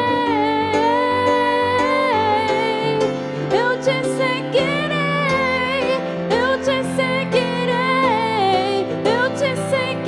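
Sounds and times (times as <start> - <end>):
grand piano accompaniment: 0.0 - 10.0
woman singing: 0.0 - 10.0.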